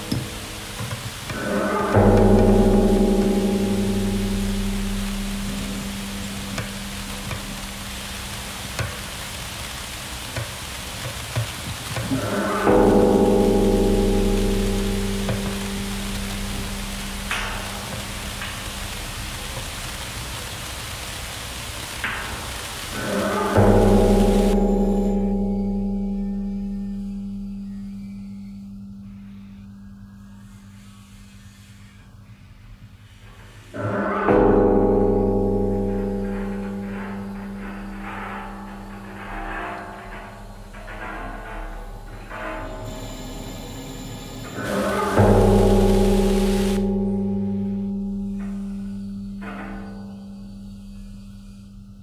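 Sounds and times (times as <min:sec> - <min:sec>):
pitched drone: 0:00.0 - 0:11.0, 0:11.9 - 0:29.9, 0:33.8 - 0:51.7
metal cauldron ringing: 0:00.0 - 0:28.6, 0:33.7 - 0:52.0
steady hiss: 0:00.0 - 0:52.0.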